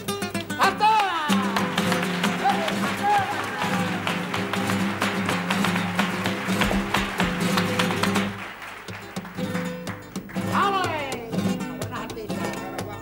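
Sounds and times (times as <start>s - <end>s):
flamenco guitar: 0.0s - 13.0s
rhythmic hand-clapping: 0.0s - 13.0s.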